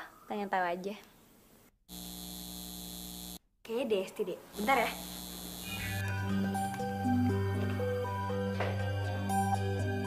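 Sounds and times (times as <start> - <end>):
electrical buzzing hum: 1.9 - 3.4, 4.4 - 7.2.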